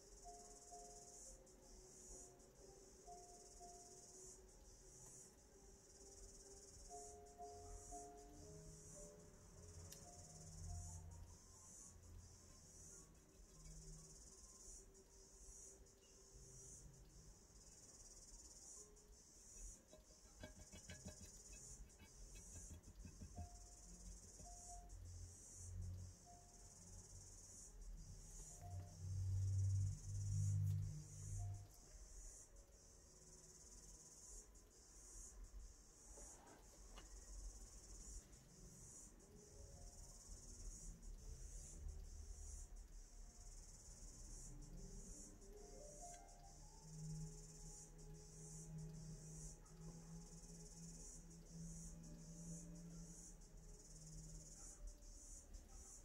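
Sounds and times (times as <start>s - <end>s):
high-pitched insect chorus: 0.0s - 56.0s.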